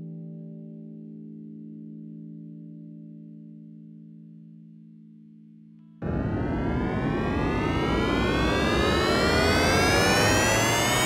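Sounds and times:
loud rushing with rising whine: 6.0s - 11.0s.

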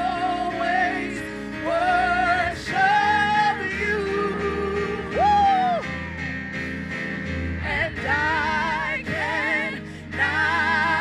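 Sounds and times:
instrumental backing: 0.0s - 11.0s
women singing gospel song: 7.6s - 11.0s.

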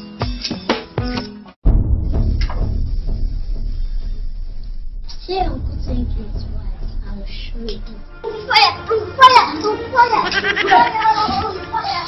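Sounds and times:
background music: 0.0s - 12.0s
child calling out: 10.1s - 12.0s.

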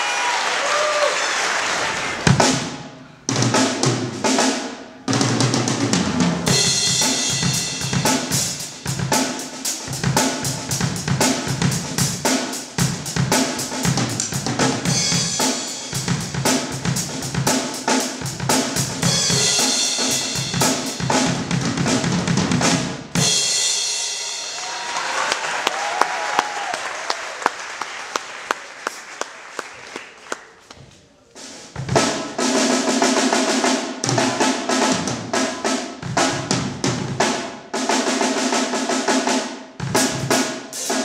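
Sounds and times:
drum kit groove: 2.2s - 24.8s, 31.3s - 41.0s.

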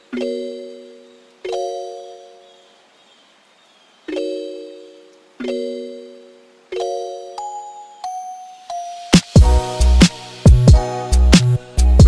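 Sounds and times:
bell-like keyboard chord: 4.1s - 12.0s.

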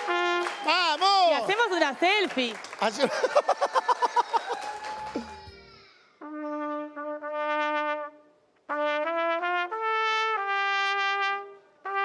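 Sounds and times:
trumpet playing: 0.0s - 0.8s, 6.2s - 12.0s
people clapping: 0.0s - 5.7s.

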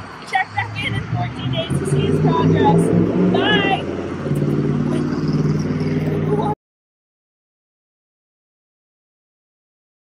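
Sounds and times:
engine humming: 0.0s - 6.6s.

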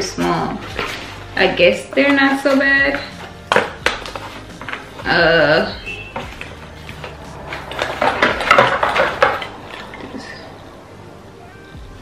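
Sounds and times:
packaging rustling: 2.9s - 5.1s, 6.2s - 10.4s
glass bulbs clinking together: 5.9s - 10.4s.

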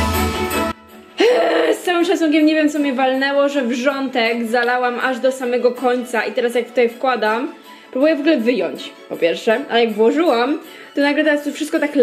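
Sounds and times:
woman talking: 1.2s - 12.0s.

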